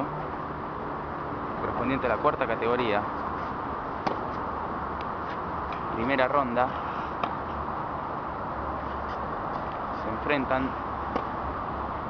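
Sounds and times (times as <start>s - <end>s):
outdoor background hiss: 0.0s - 12.0s
tennis ball impact: 3.2s - 4.4s, 7.1s - 7.6s, 11.0s - 11.4s.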